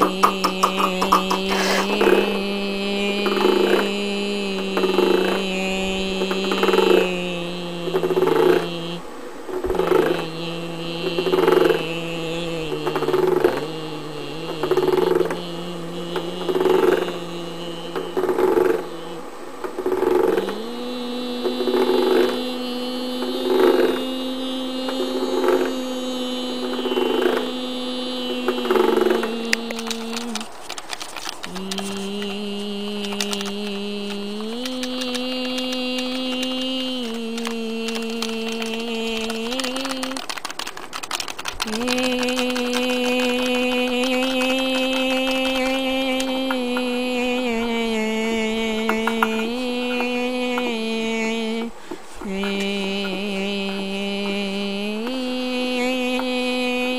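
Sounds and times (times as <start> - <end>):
rhythmic pulse: 0.0 - 9.0, 19.8 - 56.9
woman humming: 0.0 - 40.7, 41.4 - 56.9.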